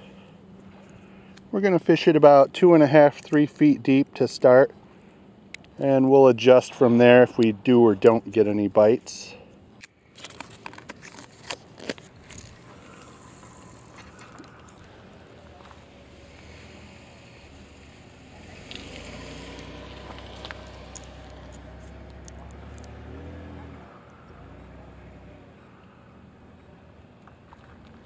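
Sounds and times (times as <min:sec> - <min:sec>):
van engine running: 0:11.7 - 0:28.0.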